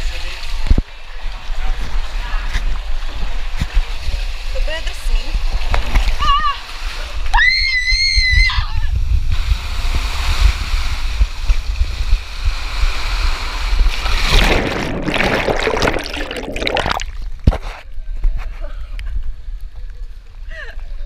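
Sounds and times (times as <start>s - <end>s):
water rushing down slide: 9.3s - 17.4s
water splashing into pool: 13.3s - 17.5s.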